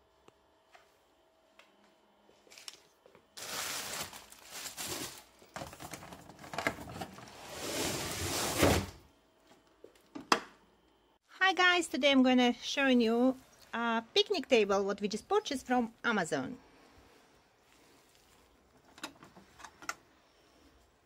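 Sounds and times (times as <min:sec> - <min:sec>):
cardboard scraping and crinkling: 0:03.4 - 0:09.0.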